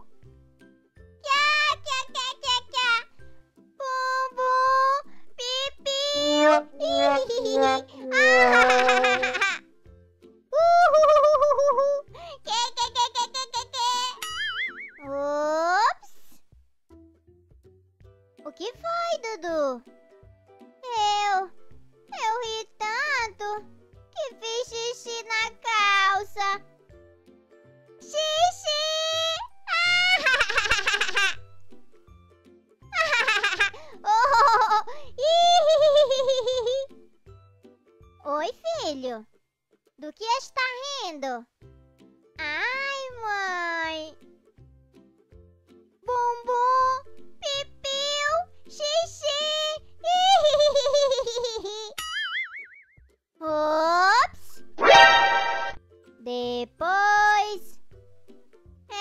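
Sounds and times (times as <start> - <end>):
light background music: 0.0 - 52.0, 53.2 - 59.0
cartoon voice shouting and laughing: 1.3 - 3.0, 3.8 - 9.6, 10.6 - 16.1, 28.2 - 31.4, 33.0 - 36.9, 47.5 - 51.9, 54.1 - 55.8
cartoon voices laughing: 6.2 - 9.6, 10.6 - 14.1.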